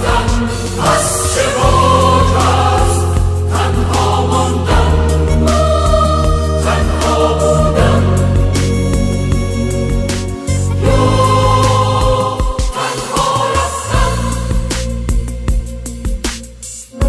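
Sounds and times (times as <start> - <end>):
choir singing: 0.0 - 9.7, 10.5 - 15.1
low held bass notes: 0.0 - 12.5, 13.9 - 17.0.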